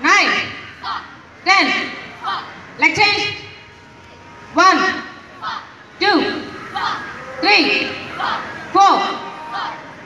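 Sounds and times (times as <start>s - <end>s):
children shouting in unison: 6.4s - 10.0s.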